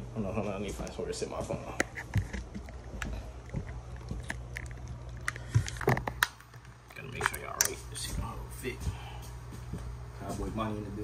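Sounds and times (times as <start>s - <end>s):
phone handling clicks and rubbing: 1.8s - 7.9s.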